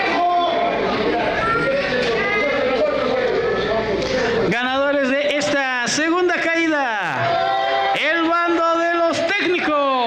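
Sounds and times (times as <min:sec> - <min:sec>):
hubbub of voices in a hall: 0:00.0 - 0:10.0.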